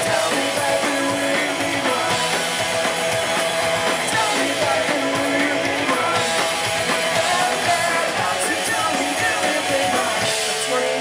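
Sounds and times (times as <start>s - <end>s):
drums: 0.0s - 11.0s
electric guitars: 0.0s - 11.0s
punk rock band playing live: 0.0s - 11.0s.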